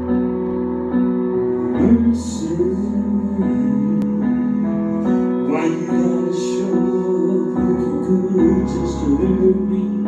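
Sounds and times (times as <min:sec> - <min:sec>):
slow instrumental music: 0:00.0 - 0:10.0.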